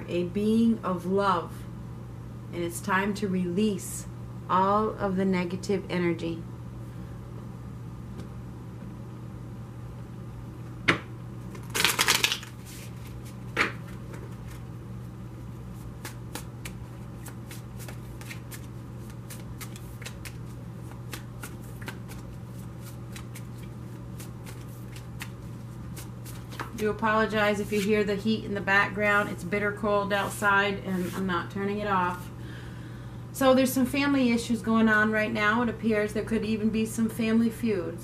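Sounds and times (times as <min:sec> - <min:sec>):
cards being shuffled: 0:11.5 - 0:14.7, 0:15.8 - 0:28.0.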